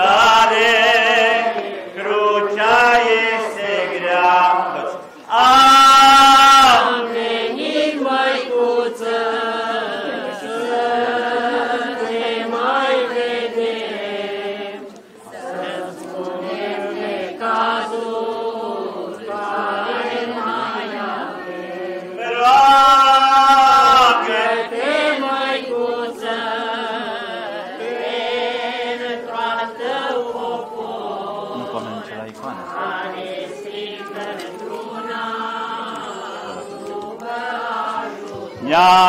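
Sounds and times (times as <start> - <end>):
liturgical chant singing: 0.0 - 39.0.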